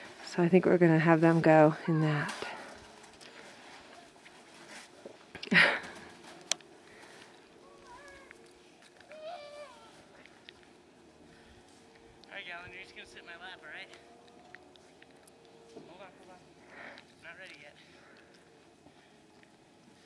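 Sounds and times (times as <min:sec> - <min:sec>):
small child calling out: 0:09.1 - 0:10.0.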